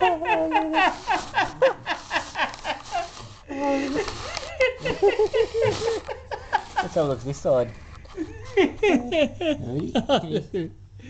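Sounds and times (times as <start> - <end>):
people laughing: 0.0 - 3.2, 3.8 - 10.8.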